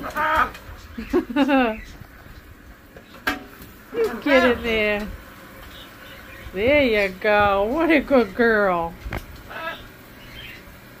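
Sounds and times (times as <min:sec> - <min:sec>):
parrot call: 0:09.5 - 0:10.7.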